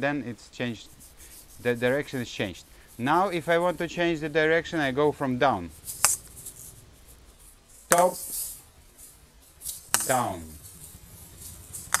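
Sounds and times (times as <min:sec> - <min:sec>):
ball swishing on cord: 0:00.7 - 0:12.0
shaker balls clicking: 0:05.7 - 0:12.0.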